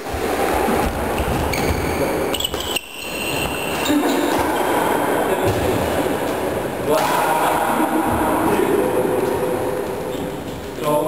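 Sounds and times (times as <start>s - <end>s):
echoing sports hall din: 0.0s - 11.0s
indistinct voices: 3.7s - 11.0s.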